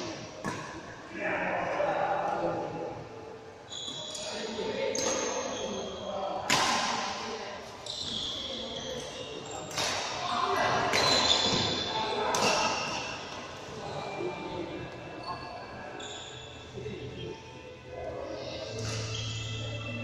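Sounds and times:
sneaker squeaks on court floor: 3.7 - 6.6, 7.8 - 13.3, 15.2 - 16.6, 18.7 - 19.9.

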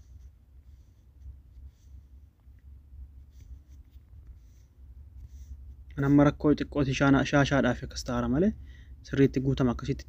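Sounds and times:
soft scratchy rustles: 0.0 - 8.2
faint low rumble: 0.0 - 10.0.

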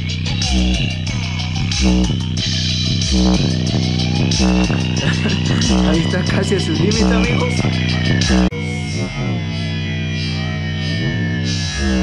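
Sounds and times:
bass-heavy electronic music: 0.0 - 12.0.

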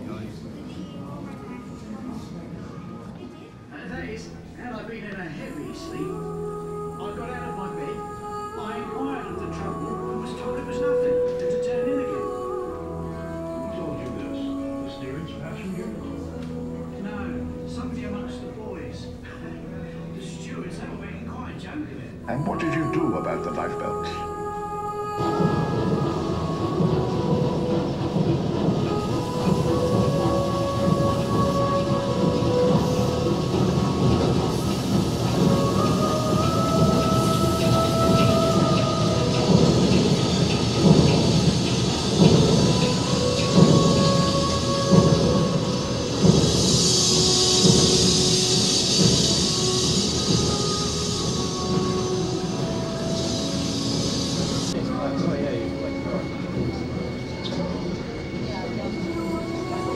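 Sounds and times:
faint music: 0.0 - 59.9
high hiss: 28.9 - 54.8.

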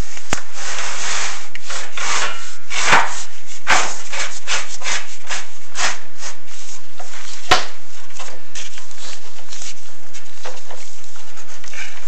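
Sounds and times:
brush scraping inside metal flue: 0.6 - 6.9.

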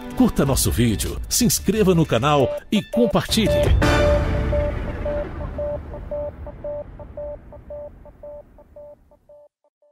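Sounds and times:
short electronic beeps: 2.8 - 9.5
low rumble: 3.5 - 9.2.

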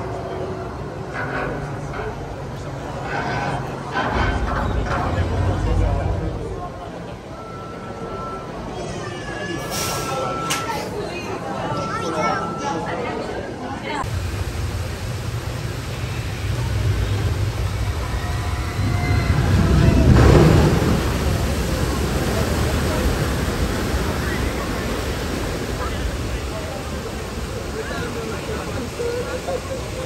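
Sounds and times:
waterfalls and churning water: 13.7 - 30.0
boat splashing down into water: 15.6 - 30.0.

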